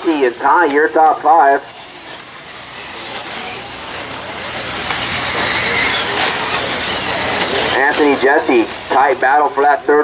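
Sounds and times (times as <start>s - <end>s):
tyres on dirt: 0.0s - 10.0s
electric motors whining: 0.4s - 9.9s.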